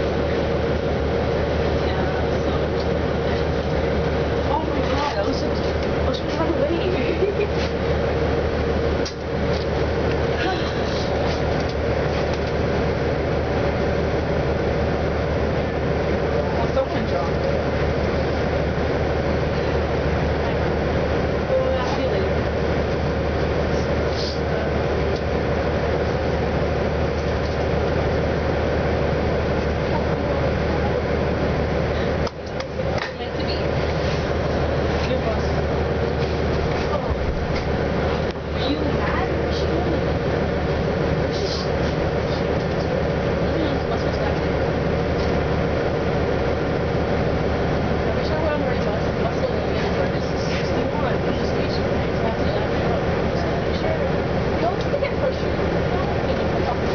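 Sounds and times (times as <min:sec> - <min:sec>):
bus engine idling: 0:00.0 - 0:56.9.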